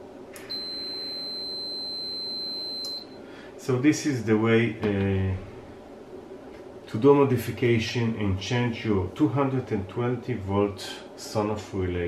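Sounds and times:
multimeter continuity beep: 0:00.4 - 0:03.2.

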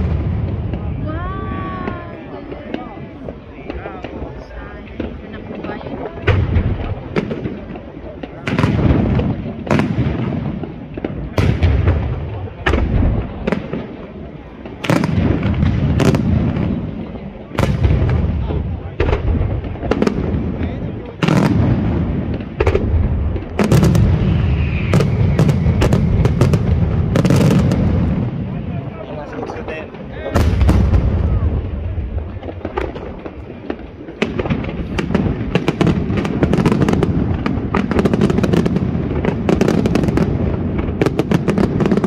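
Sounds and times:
fireworks bursting: 0:00.0 - 0:42.0.

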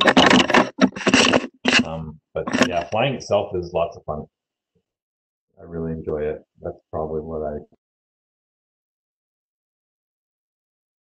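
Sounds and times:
man talking over video call: 0:01.8 - 0:04.3, 0:05.6 - 0:07.8.

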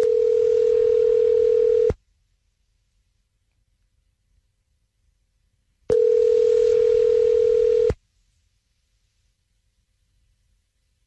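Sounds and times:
telephone ringback tone: 0:00.0 - 0:02.0, 0:05.9 - 0:08.0.

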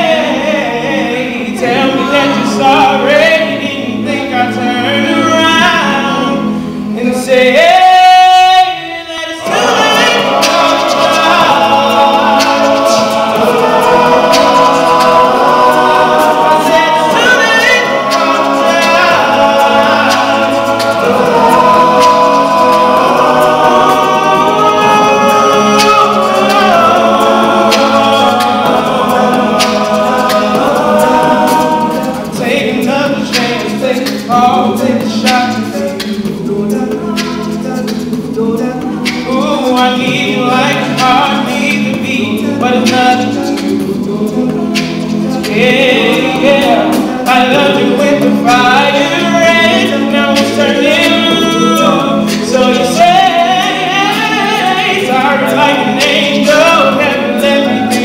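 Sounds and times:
male a cappella group singing: 0:00.0 - 0:58.0.

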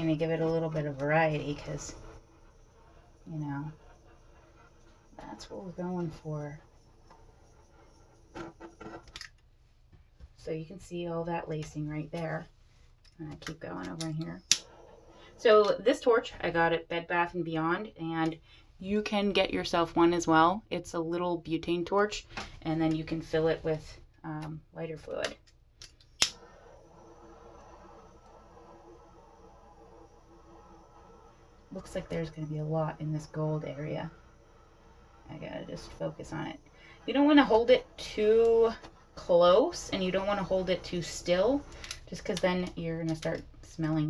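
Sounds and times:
butane torch flame hissing: 0:00.0 - 0:09.1, 0:14.2 - 0:16.4, 0:26.1 - 0:43.8.

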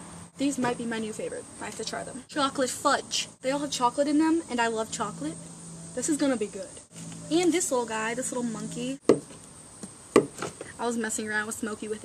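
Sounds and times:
knocks on wooden table: 0:09.1 - 0:09.4, 0:10.2 - 0:10.6.

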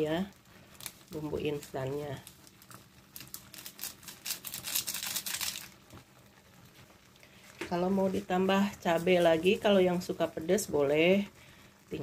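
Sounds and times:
seasoning sachet crinkling: 0:00.1 - 0:10.8.

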